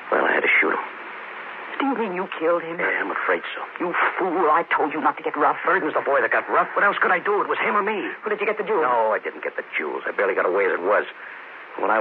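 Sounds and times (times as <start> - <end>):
steady recording hiss: 0.0 - 12.0
person speaking: 1.6 - 11.2.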